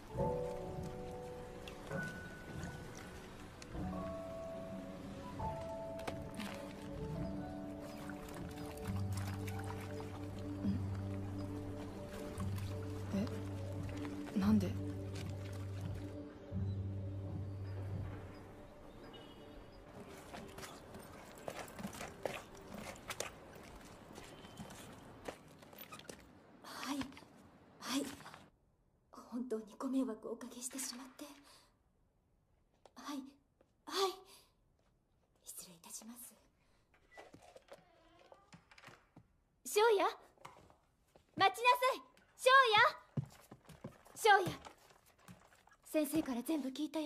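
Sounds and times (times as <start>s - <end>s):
footsteps on wooden floor: 43.1s - 46.6s.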